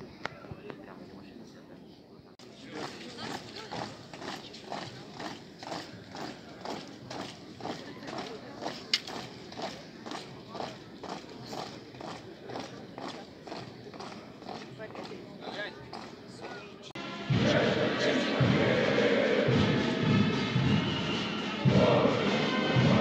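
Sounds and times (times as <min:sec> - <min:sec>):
soldiers marching on wet road: 0:02.4 - 0:16.9.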